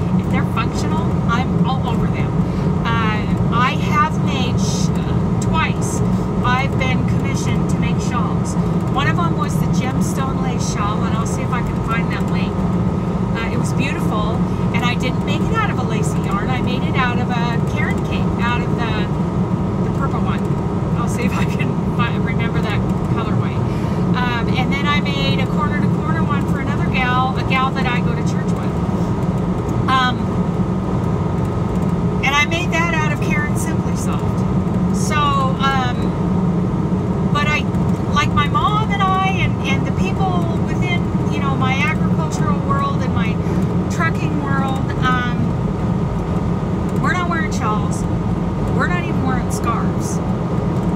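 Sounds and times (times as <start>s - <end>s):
woman talking: 0.0s - 12.6s, 13.3s - 19.2s, 19.8s - 28.8s, 29.9s - 30.3s, 32.2s - 34.4s, 35.0s - 36.2s, 37.4s - 45.6s, 47.0s - 48.1s, 48.8s - 50.2s
truck engine and road drone: 0.0s - 50.9s.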